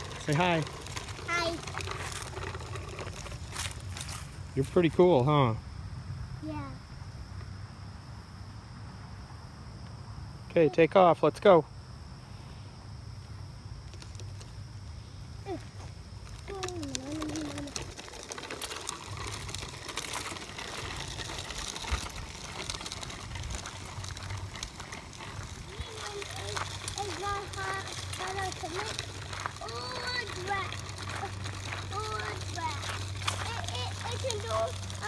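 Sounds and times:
bicycle wheels crackling over gravel: 0:00.0 - 0:06.8, 0:12.8 - 0:35.0.

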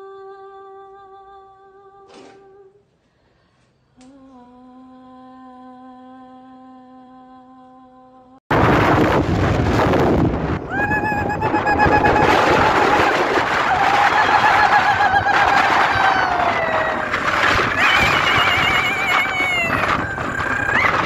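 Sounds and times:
person humming: 0:04.0 - 0:08.4
wind buffeting microphone: 0:08.5 - 0:21.0.

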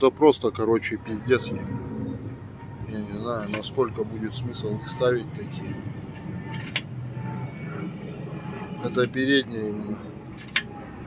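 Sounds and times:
steady low hum: 0:00.9 - 0:11.0.

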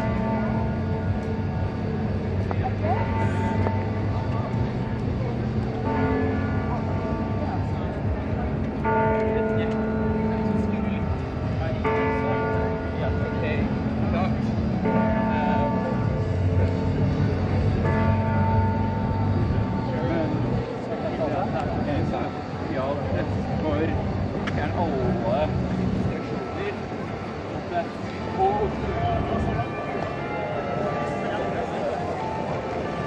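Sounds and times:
passers-by talking indistinctly: 0:00.0 - 0:33.0
street noise: 0:00.0 - 0:33.0.

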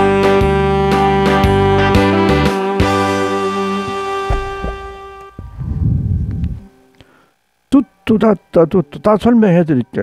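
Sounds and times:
saxophone with backing music: 0:00.0 - 0:05.5
low rumbling microphone noise: 0:03.8 - 0:06.8.

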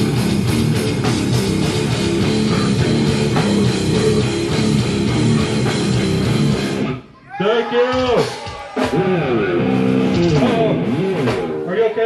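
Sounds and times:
distorted electric guitar riff: 0:00.0 - 0:07.1, 0:08.8 - 0:11.7
drums: 0:00.0 - 0:12.0.

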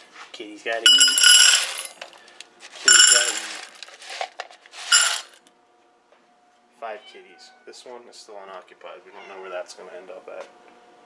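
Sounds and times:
kibble rattling into steel bowl: 0:00.9 - 0:02.0, 0:02.8 - 0:05.4
small clink: 0:00.9 - 0:02.0, 0:02.9 - 0:03.6, 0:04.9 - 0:05.3.

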